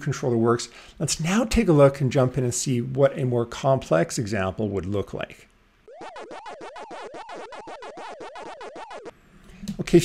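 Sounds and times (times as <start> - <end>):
warbling electronic bleep: 5.9 - 9.1.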